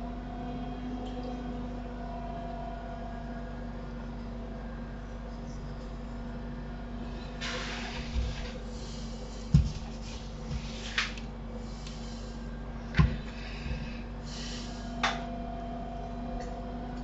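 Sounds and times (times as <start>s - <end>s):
computer hum and fan noise: 0.0s - 17.0s.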